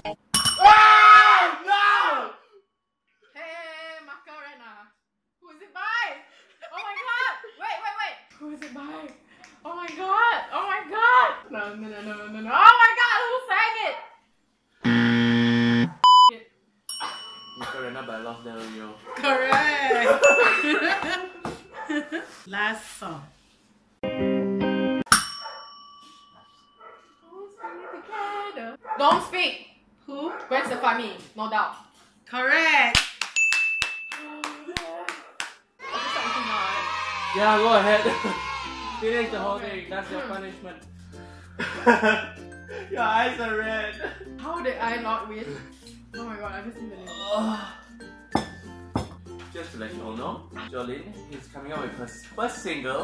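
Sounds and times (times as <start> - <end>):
man and woman shrieking: 0.6 - 2.4, 35.8 - 39.2
service bell ringing: 16.9 - 18.7, 20.2 - 21.5, 25.1 - 26.9.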